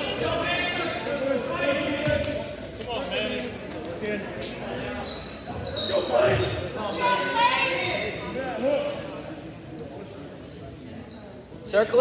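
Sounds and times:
voices calling out in gymnasium: 0:00.0 - 0:12.0.

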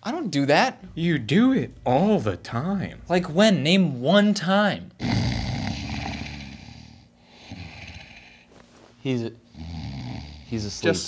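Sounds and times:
man snoring: 0:05.0 - 0:08.5, 0:09.5 - 0:10.9.

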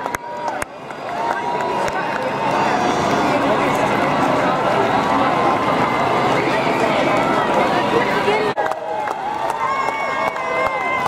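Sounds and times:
crowd shouting and calling: 0:00.0 - 0:11.0.

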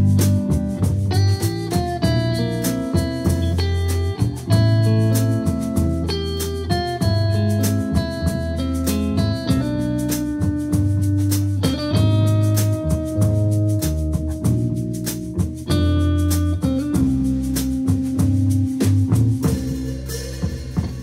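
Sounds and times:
cymbal beat: 0:00.0 - 0:21.0
electric bass line: 0:00.0 - 0:21.0.

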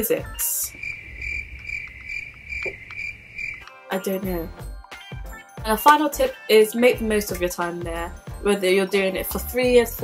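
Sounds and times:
cricket chirping: 0:00.7 - 0:03.7.

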